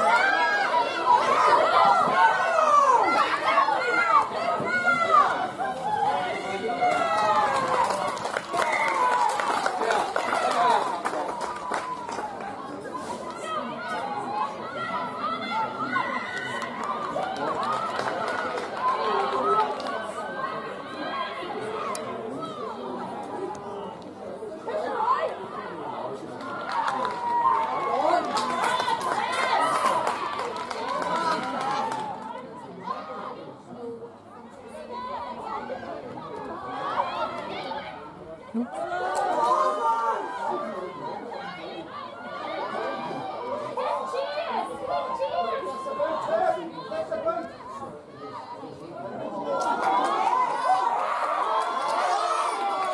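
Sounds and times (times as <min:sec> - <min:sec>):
crowd calling and shouting: 0:00.0 - 0:52.9.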